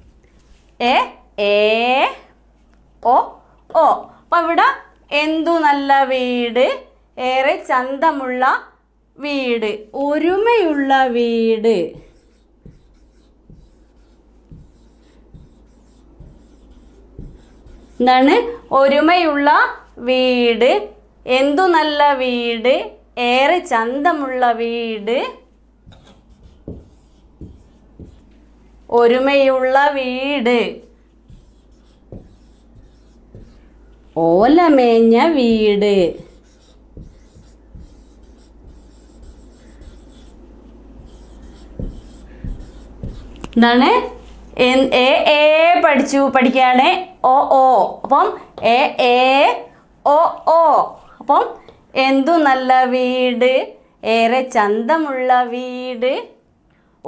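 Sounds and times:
marker pen writing on whiteboard: 0:11.8 - 0:18.6, 0:25.8 - 0:28.6, 0:30.3 - 0:34.0, 0:35.2 - 0:43.6
knock: 0:25.9 - 0:28.2.

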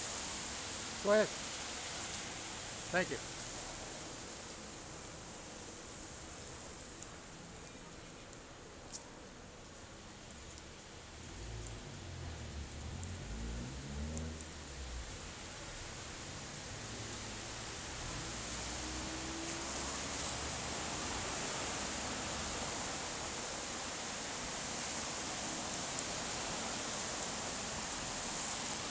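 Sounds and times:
street ambience hiss: 0:00.0 - 0:28.9.

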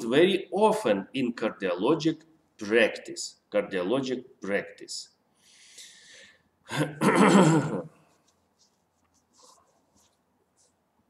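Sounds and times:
person coughing: 0:06.7 - 0:08.0.

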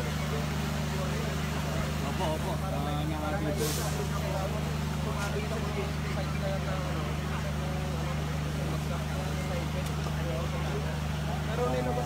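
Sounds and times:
idling vehicle engine hum: 0:00.0 - 0:12.0
short hiss: 0:03.6 - 0:04.1.

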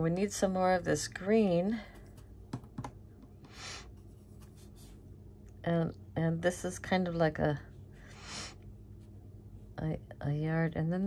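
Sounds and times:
faint low room hum: 0:00.0 - 0:11.0.

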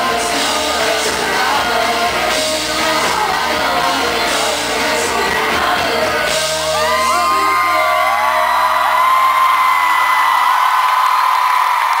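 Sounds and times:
audience cheering and whooping: 0:06.3 - 0:12.0.

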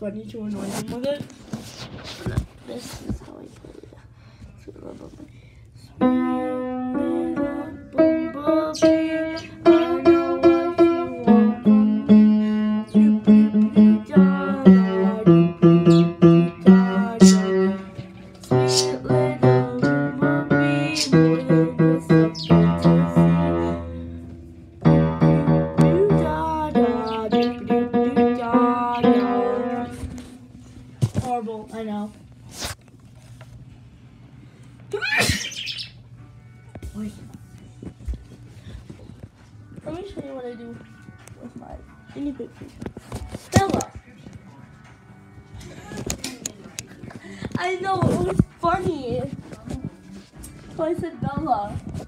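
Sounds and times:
upright piano playing: 0:06.0 - 0:31.0.

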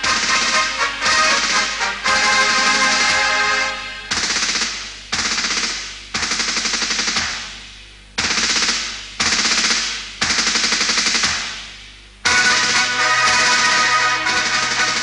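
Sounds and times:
automatic gunfire bursts: 0:00.0 - 0:03.2, 0:04.1 - 0:07.5, 0:08.2 - 0:11.6, 0:12.3 - 0:15.0
music: 0:00.0 - 0:04.7, 0:12.2 - 0:15.0.

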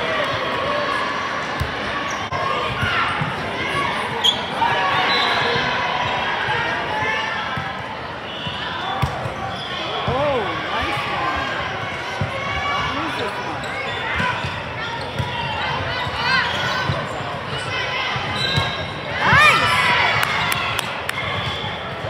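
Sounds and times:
sneakers squeaking on court: 0:12.2 - 0:19.6.

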